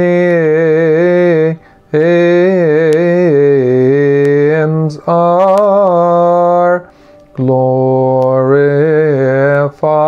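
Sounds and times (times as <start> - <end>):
man singing a hymn unaccompanied: 0.0 - 10.0.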